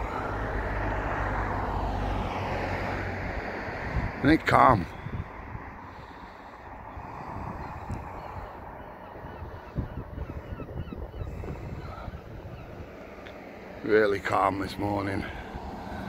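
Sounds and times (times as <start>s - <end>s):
wind buffeting microphone: 0.0s - 13.8s
faint bird calls: 5.8s - 13.8s.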